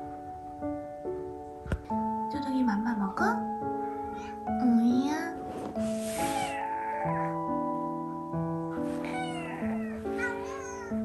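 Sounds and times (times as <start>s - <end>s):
light background music: 0.0s - 11.0s
cat meowing: 6.2s - 7.5s, 8.8s - 11.0s.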